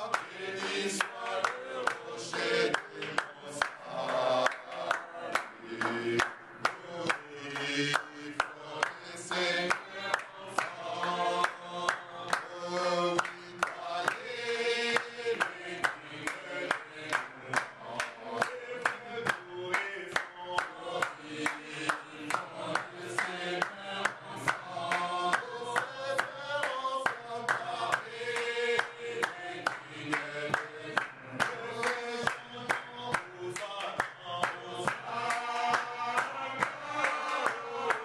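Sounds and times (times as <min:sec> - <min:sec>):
congregation singing: 0:00.0 - 0:38.0
people clapping in time: 0:00.0 - 0:38.0.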